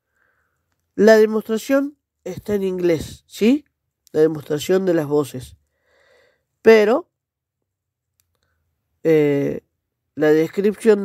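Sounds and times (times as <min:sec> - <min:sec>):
faint clicks: 0:08.1 - 0:08.6.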